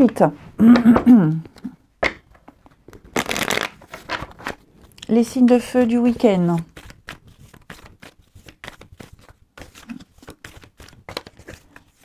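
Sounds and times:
cards being shuffled: 2.4s - 12.0s.

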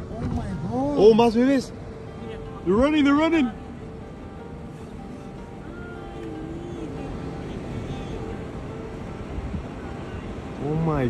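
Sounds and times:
faint music: 0.0s - 11.0s
vehicle cabin rumble: 0.0s - 11.0s.

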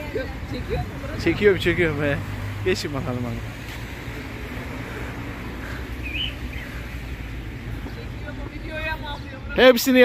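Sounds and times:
city rumble: 0.0s - 10.0s
bird chirp: 5.6s - 9.6s.

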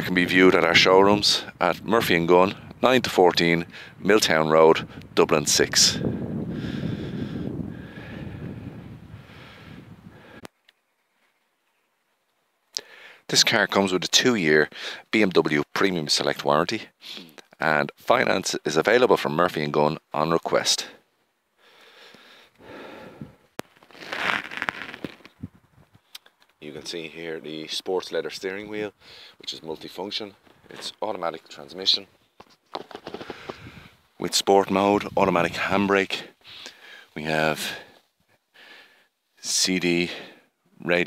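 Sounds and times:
wind buffeting microphone: 3.6s - 10.4s, 25.4s - 26.0s, 33.4s - 34.0s
camera handling rustles: 23.6s - 25.4s, 32.4s - 33.7s.

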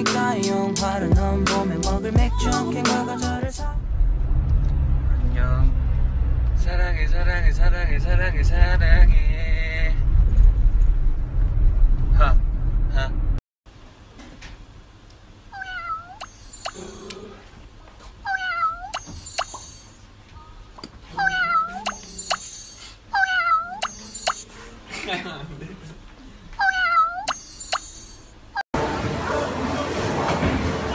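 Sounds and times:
cat meowing: 15.5s - 16.2s, 18.2s - 18.9s, 21.1s - 22.0s, 23.1s - 23.9s, 26.6s - 27.3s.

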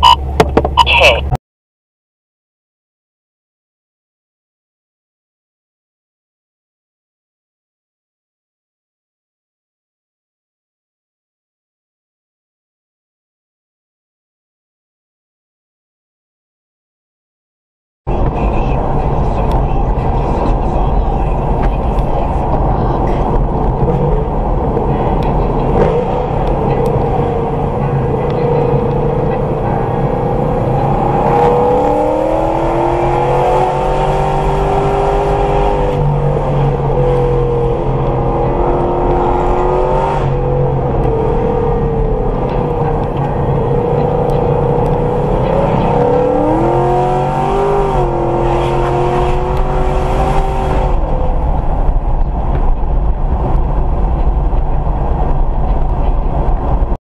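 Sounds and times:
car engine: 0.0s - 1.4s, 18.1s - 57.0s
road and wind noise inside car: 0.0s - 1.4s, 18.1s - 57.0s.

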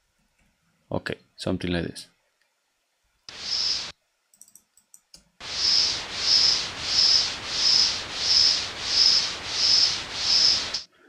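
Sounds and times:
synthesized white noise with whistling resonance: 3.3s - 3.9s, 5.4s - 10.9s
soft mouse clicks: 4.3s - 5.3s.

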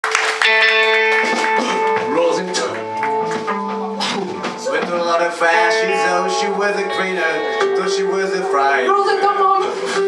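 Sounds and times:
electric guitars: 0.0s - 10.0s
drums: 0.1s - 10.0s
person singing: 2.8s - 10.0s.

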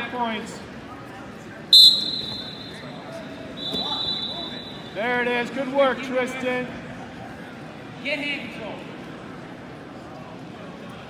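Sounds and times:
referee's whistle blast: 1.8s - 3.0s, 3.6s - 5.0s.

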